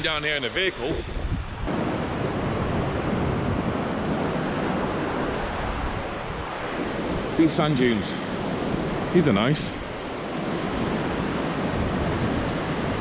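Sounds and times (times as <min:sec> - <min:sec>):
waves breaking on sandy beach: 0:00.0 - 0:13.0
wind rumbling on microphone: 0:00.0 - 0:13.0.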